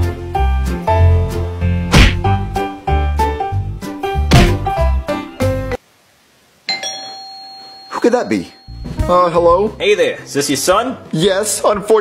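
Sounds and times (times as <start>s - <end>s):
doorbell chime: 6.7s - 9.7s.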